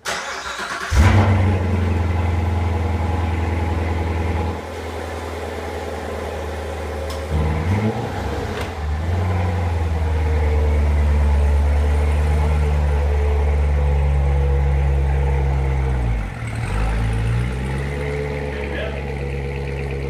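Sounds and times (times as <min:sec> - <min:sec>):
car engine starting and idling: 0:00.0 - 0:20.0
engine revving: 0:00.0 - 0:20.0.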